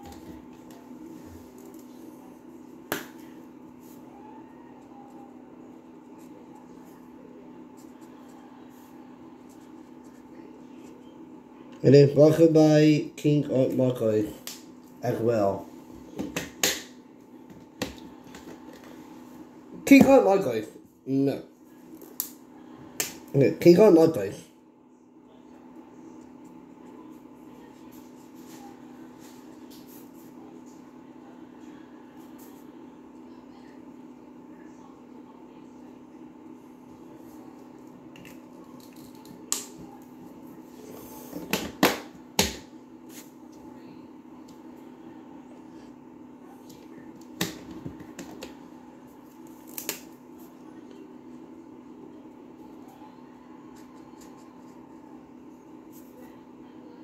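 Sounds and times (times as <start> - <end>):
low room hum: 0.0 - 57.0.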